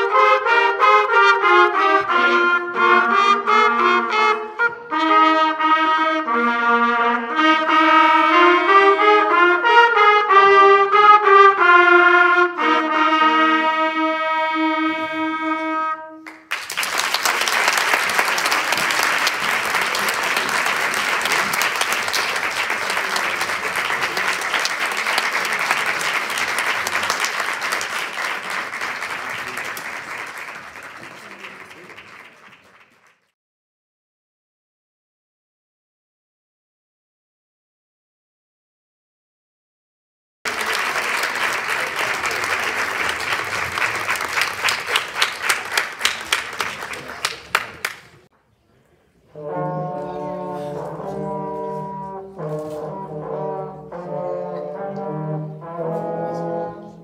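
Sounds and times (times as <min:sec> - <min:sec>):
trumpet ensemble playing: 0:00.0 - 0:16.3, 0:17.6 - 0:29.7, 0:49.3 - 0:57.0
audience applause: 0:16.2 - 0:33.3, 0:40.5 - 0:48.3.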